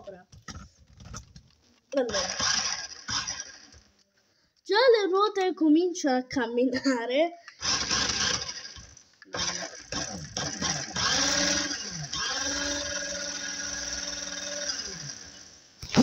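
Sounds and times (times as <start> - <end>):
toy car electric motor whirring: 2.0 - 3.8, 7.6 - 15.5.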